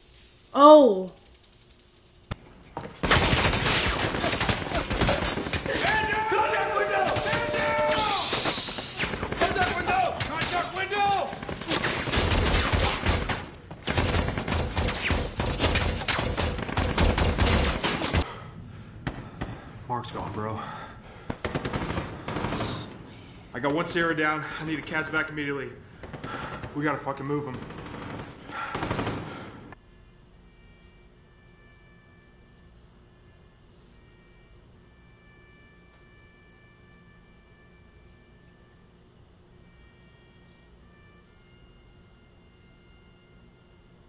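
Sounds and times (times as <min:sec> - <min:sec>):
men shouting: 0:05.6 - 0:08.6
automatic gunfire: 0:07.0 - 0:18.2, 0:21.3 - 0:23.1, 0:26.0 - 0:29.6.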